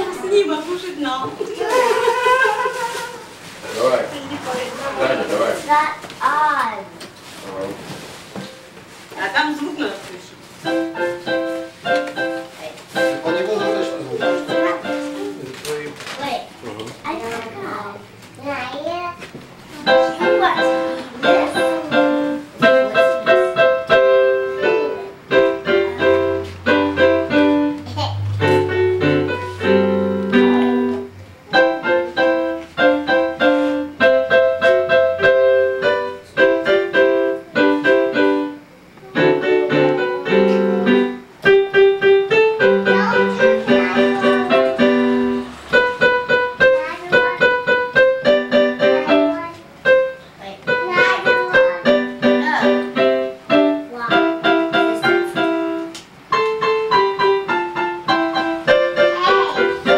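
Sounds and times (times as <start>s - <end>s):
electronic keyboard piano piece: 10.6s - 15.9s, 19.7s - 59.9s.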